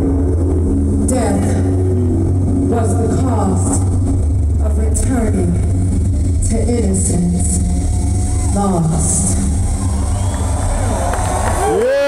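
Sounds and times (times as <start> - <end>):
low bass drone: 0.0 - 12.0.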